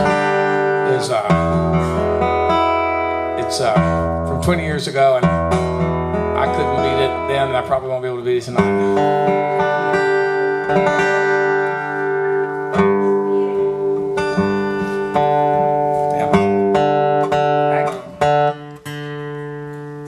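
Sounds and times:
acoustic guitar strummed chords: 0:00.0 - 0:20.0.

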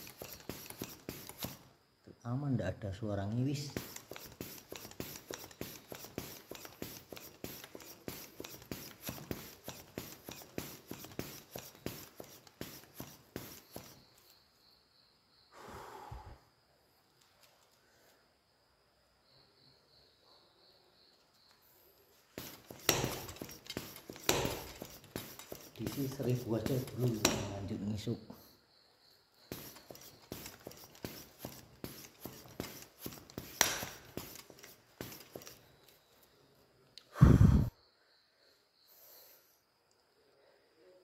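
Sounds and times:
hand pump air strokes: 0:00.0 - 0:01.6, 0:03.3 - 0:14.1, 0:22.3 - 0:28.2, 0:29.5 - 0:36.0.

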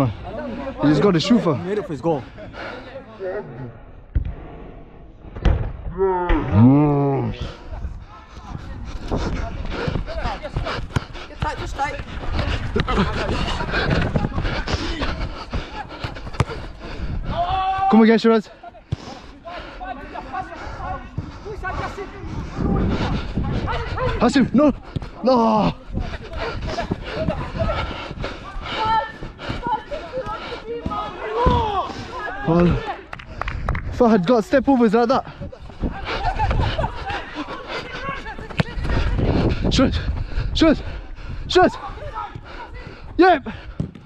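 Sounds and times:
person shouting: 0:17.3 - 0:18.0
distant players shouting: 0:17.3 - 0:22.2, 0:25.4 - 0:33.1
football being kicked: 0:38.4 - 0:38.9, 0:43.8 - 0:44.0.

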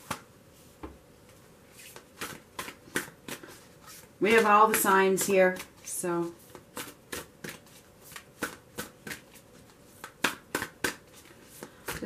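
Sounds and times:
cards being shuffled: 0:01.7 - 0:12.0.

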